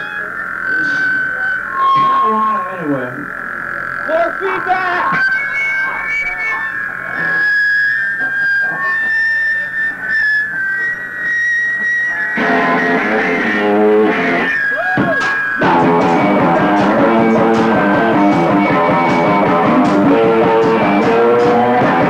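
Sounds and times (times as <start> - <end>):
voice sounds: 0.0 - 11.4
distorted electric guitar tone: 0.0 - 22.0
scattered guitar noises: 0.0 - 22.0
punk rock band playing: 11.8 - 22.0.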